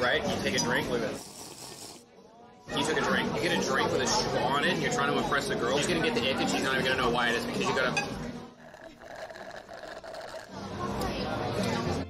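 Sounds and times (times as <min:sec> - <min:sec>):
rattling slurp through straw: 0:01.0 - 0:02.0, 0:08.6 - 0:10.6.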